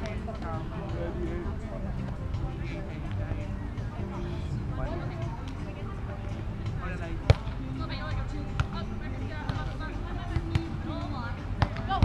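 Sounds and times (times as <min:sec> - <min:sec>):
volleyball hit by hand: 0:07.2 - 0:07.6, 0:08.5 - 0:08.8, 0:09.4 - 0:10.8, 0:11.5 - 0:12.0.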